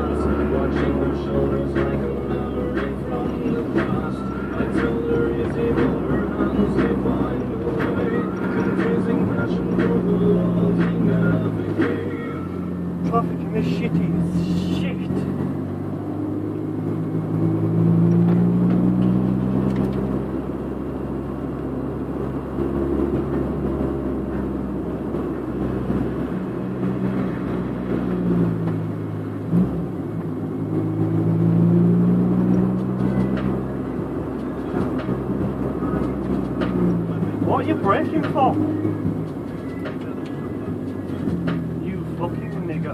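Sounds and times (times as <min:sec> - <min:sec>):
car engine revving: 0:00.0 - 0:42.9
road noise: 0:00.0 - 0:42.9.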